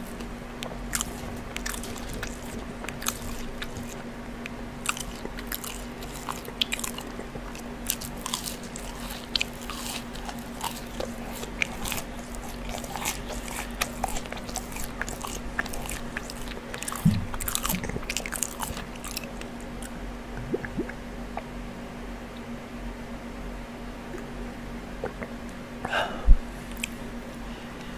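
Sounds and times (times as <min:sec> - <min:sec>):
chewing with wet clicks: 0:00.2 - 0:20.0, 0:26.7 - 0:27.0
biting into a fry: 0:00.6 - 0:20.0.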